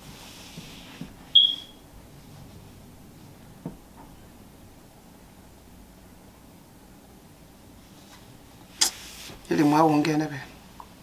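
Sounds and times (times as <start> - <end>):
high-pitched electronic beep: 1.4 - 1.8
faint knock: 3.6 - 4.1.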